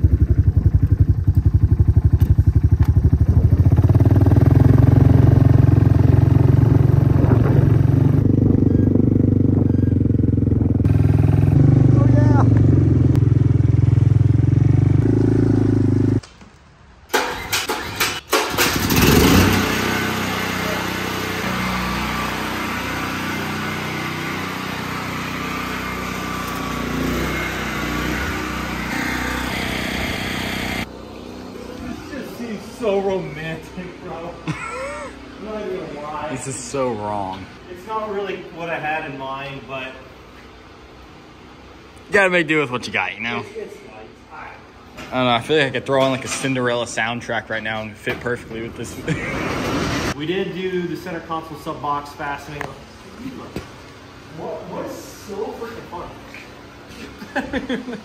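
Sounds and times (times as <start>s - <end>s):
noisy rumble: 0.0s - 16.2s
quad bike engine running: 0.0s - 16.2s, 18.6s - 32.4s.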